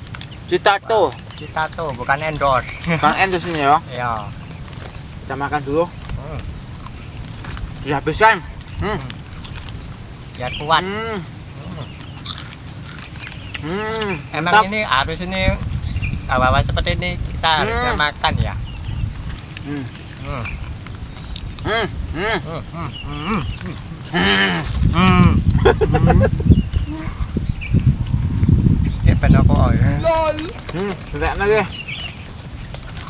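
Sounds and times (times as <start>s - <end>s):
low rumbling noise: 0.0s - 33.0s
chips crunching and chewing: 6.0s - 7.9s, 8.6s - 9.9s, 11.9s - 14.2s, 32.6s - 33.0s
men humming with mouths full: 6.1s - 16.1s, 17.6s - 28.6s, 30.3s - 31.8s.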